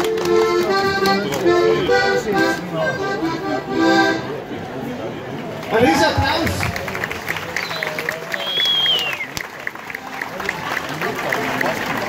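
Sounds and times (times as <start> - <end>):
dancers clapping hands rhythmically: 0.0 - 1.5, 6.6 - 12.0.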